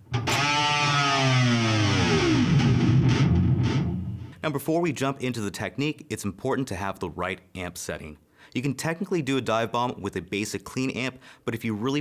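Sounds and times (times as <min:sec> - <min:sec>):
distorted electric guitar dive bomb: 0:00.0 - 0:04.4.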